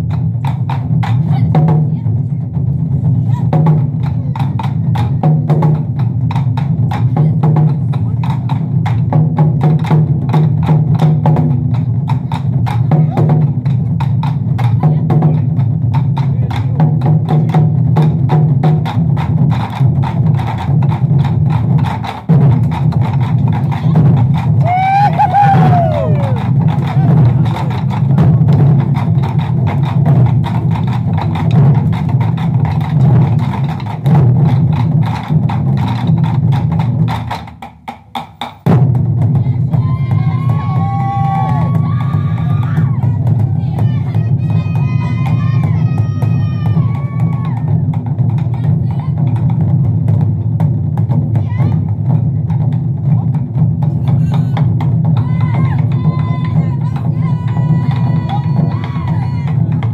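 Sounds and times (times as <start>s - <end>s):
barrel drums ensemble: 0.0s - 59.9s.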